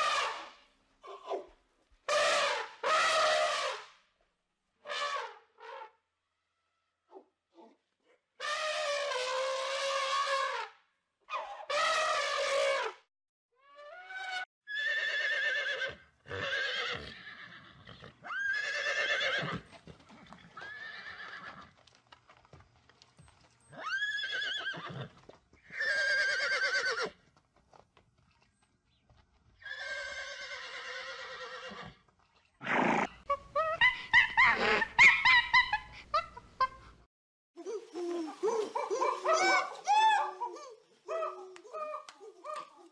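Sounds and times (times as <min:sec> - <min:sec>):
horses neighing: 0:14.8 - 0:21.6.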